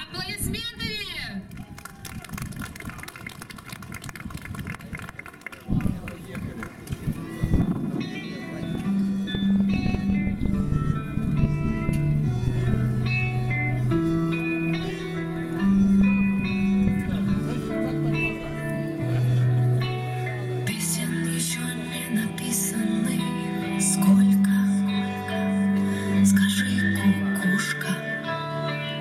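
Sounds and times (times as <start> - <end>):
audience background noise: 1.4 - 29.0
instrumental music over loudspeakers: 7.0 - 29.0.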